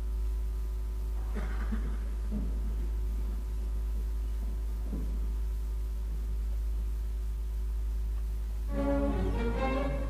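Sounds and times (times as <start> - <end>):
faint irregular noise: 0.0 - 10.0
steady low hum: 0.0 - 10.0.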